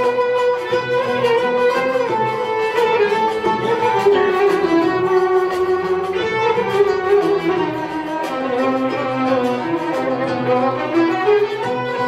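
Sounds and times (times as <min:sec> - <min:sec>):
plucked kanun and oud: 0:00.0 - 0:12.0.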